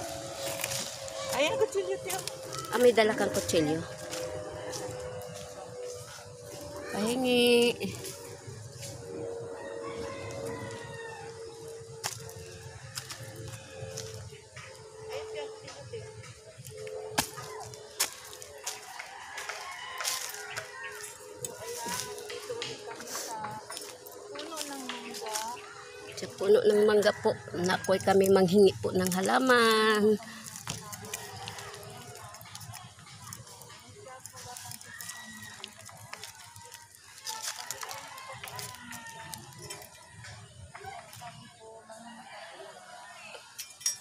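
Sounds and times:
chickens clucking: 15.6 - 42.5.

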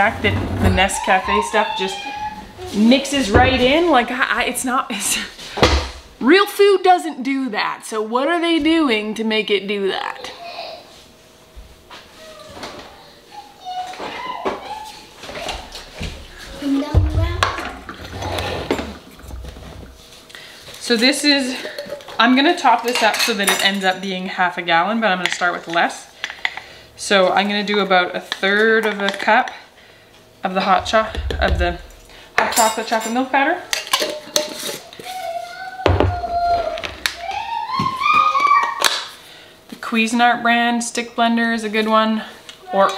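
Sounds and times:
plastic jug handling rumble: 0.0 - 4.1, 16.0 - 20.2
children's voices: 0.7 - 3.4
child calling out: 0.9 - 2.8, 12.2 - 15.7, 35.0 - 38.9.

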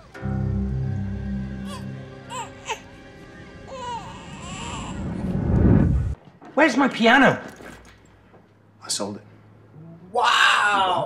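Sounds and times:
soft music: 0.0 - 5.6
rising whoosh effect: 0.0 - 6.2
infant crying: 1.6 - 2.8, 3.7 - 5.1.

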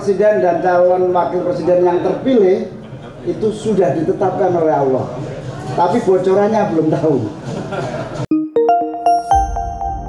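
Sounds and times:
bell-like chime notes: 8.3 - 10.0.

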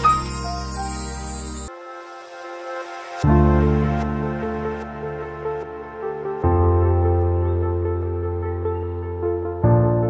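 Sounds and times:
theme music with held chords: 0.0 - 1.7.

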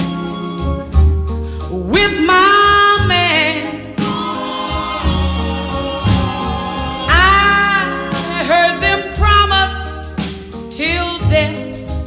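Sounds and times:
soul song with sustained chords: 0.0 - 10.8
low bass line: 0.6 - 9.8.

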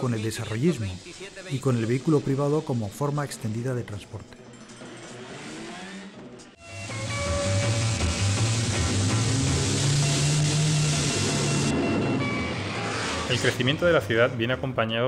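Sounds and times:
heavy traffic roar: 4.8 - 14.1
film music: 6.6 - 14.5.

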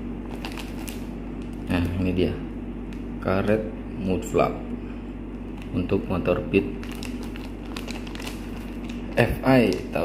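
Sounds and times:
steady low hum: 0.0 - 10.0
plastic bag crinkling: 0.2 - 2.0, 6.7 - 10.0.

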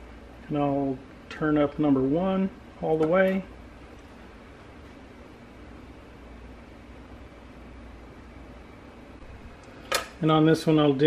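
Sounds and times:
room hiss and hum: 0.0 - 11.0
sharp click: 9.6 - 10.2.

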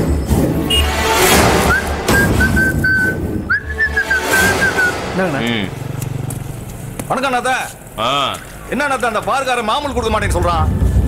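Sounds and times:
background music: 0.0 - 6.6
person whistling tune: 1.6 - 5.1.

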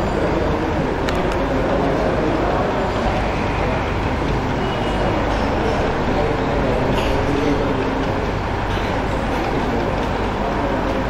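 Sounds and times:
loud rumbling background noise: 0.0 - 11.0.

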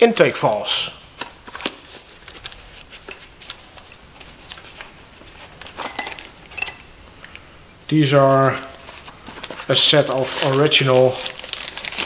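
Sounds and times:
metallic clinks: 5.8 - 7.0.

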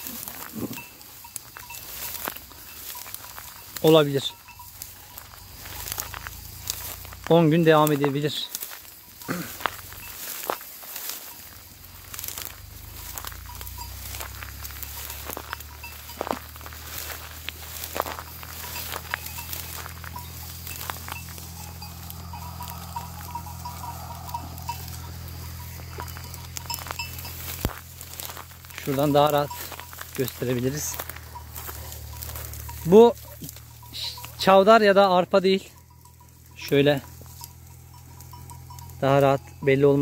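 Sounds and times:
faint wavering tone: 13.3 - 28.8.

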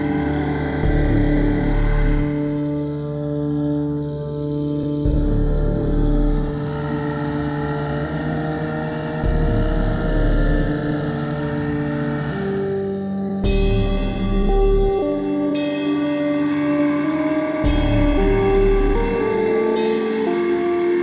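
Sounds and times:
deep bass drone: 0.0 - 21.0
synthesizer pads: 0.0 - 21.0.

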